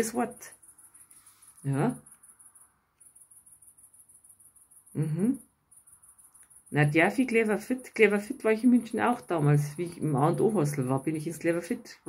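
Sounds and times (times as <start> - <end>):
high-pitched insect trill: 0.0 - 11.8.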